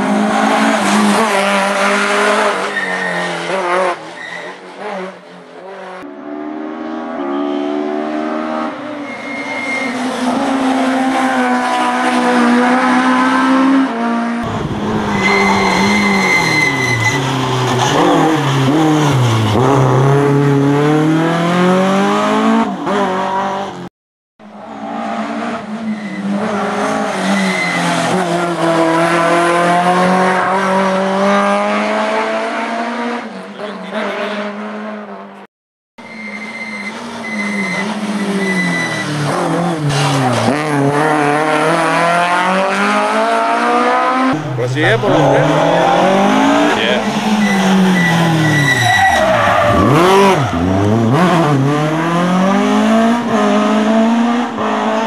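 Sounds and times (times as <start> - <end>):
rally car engine revving: 0.0 - 23.9, 24.5 - 35.4, 36.7 - 55.0
tyres squealing: 15.1 - 19.6, 36.0 - 39.2, 44.4 - 50.8.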